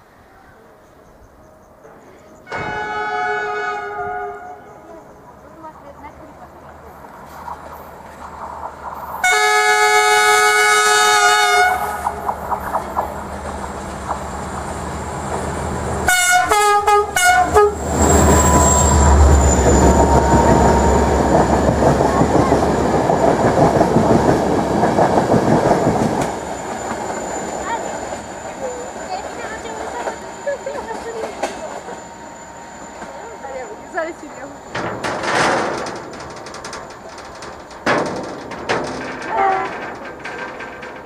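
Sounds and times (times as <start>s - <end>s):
train engine rumble: 0.0s - 41.0s
train horn: 2.4s - 4.9s, 9.2s - 12.3s, 16.0s - 21.2s
wheels on rails: 11.8s - 16.1s, 17.8s - 41.0s.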